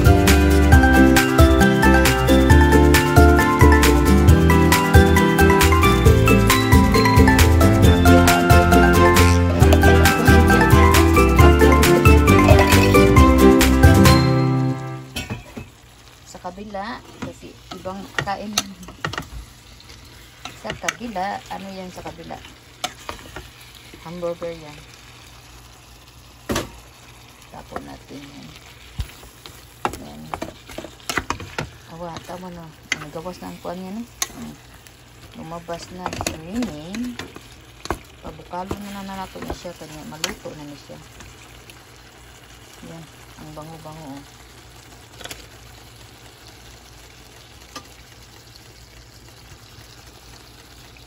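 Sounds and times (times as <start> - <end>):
low sizzle: 0.0 - 51.0
curry simmering in a pan: 15.7 - 51.0
spatula scraping and knocking pan: 29.8 - 33.2, 35.8 - 40.4.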